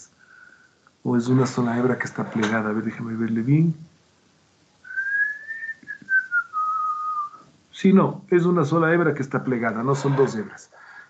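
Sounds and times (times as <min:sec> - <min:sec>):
person whistling a held note: 0:04.9 - 0:07.4.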